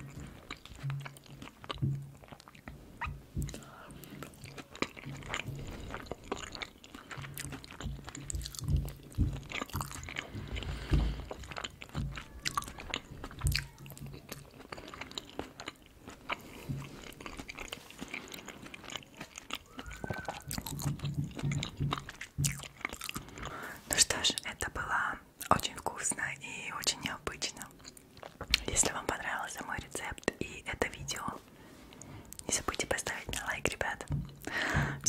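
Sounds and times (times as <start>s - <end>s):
chewing and wet mouth sounds: 0.0s - 35.0s.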